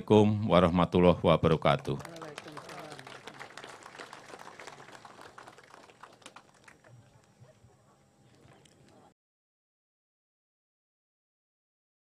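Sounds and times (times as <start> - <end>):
audience applause: 1.8 - 7.3.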